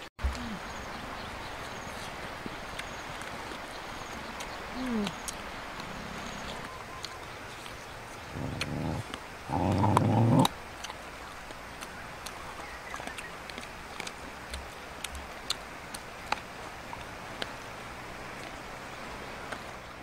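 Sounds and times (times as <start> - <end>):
chewing clicks: 2.7 - 17.7, 18.4 - 18.6
dogs growling: 5.8 - 6.6, 8.2 - 11.0.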